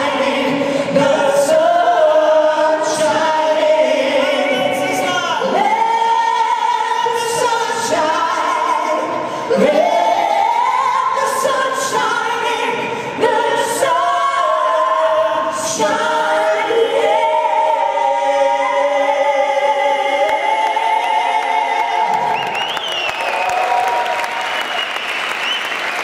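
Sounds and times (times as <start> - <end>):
group singing in harmony: 0.0 - 23.1.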